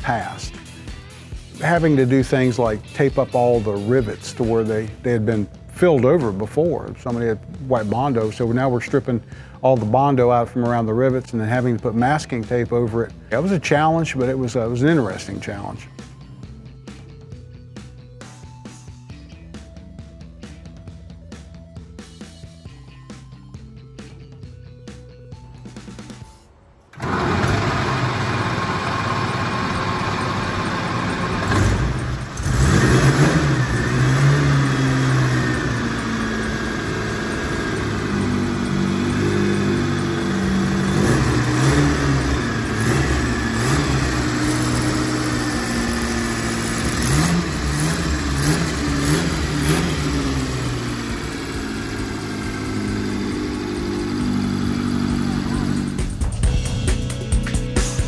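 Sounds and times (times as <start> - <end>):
car engine starting and running: 0.0 - 24.6, 25.4 - 57.4
engine throttle blips: 26.8 - 56.8.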